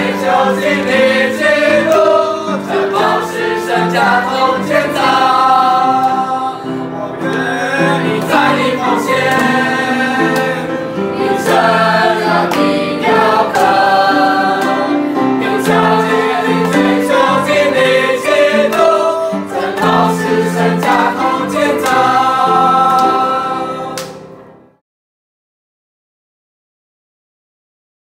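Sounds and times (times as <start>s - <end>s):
group singing a hymn: 0.0s - 24.4s.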